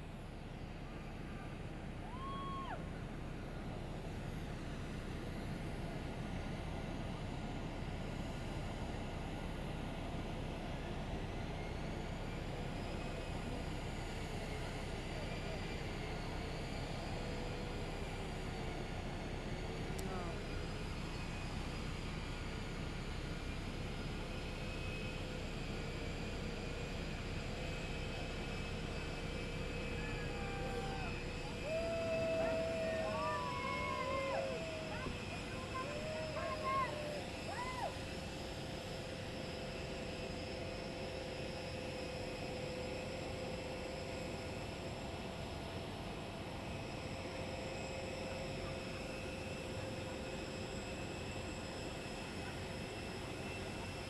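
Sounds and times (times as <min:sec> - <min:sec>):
jet aircraft idling: 0:00.0 - 0:54.0
distant voices calling out: 0:29.8 - 0:38.0.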